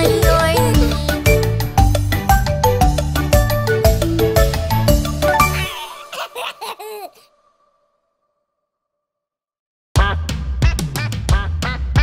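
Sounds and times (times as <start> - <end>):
bouncy children's song music: 0.0 - 6.7
cartoon baby giggling: 5.4 - 7.3.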